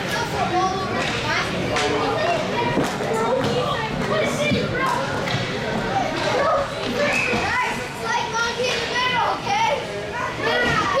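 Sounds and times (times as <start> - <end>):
children shouting: 6.0 - 11.0.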